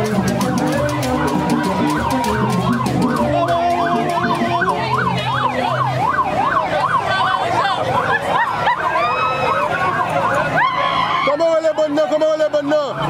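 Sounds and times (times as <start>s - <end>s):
music: 0.0s - 6.1s
crowd noise: 0.0s - 13.0s
siren yelping: 0.0s - 13.0s.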